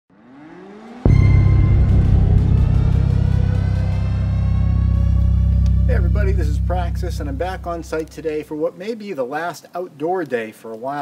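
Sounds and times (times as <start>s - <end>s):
rising music swell: 0.1s - 8.5s
loud hit with deep drone: 1.0s - 8.5s.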